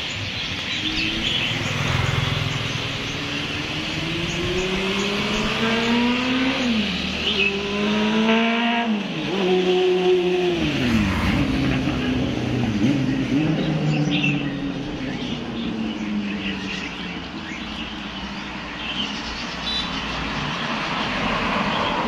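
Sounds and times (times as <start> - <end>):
vehicles passing: 0.0 - 22.0
vehicle engine accelerating: 0.3 - 18.2.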